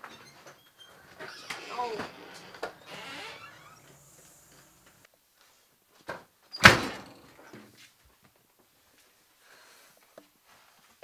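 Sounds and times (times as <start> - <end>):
door slamming shut: 1.2 - 5.0, 6.6 - 7.3.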